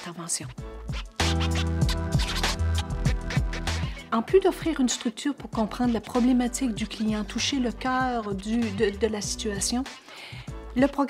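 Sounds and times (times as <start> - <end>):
music with percussive hits: 0.6 - 7.3.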